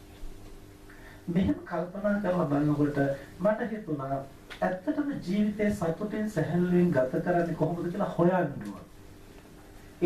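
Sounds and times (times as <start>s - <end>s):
man speaking into microphone: 1.3s - 8.9s.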